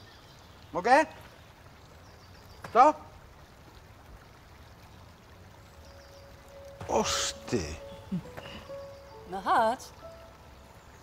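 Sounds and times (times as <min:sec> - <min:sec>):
slow river water wash: 0:00.0 - 0:11.0.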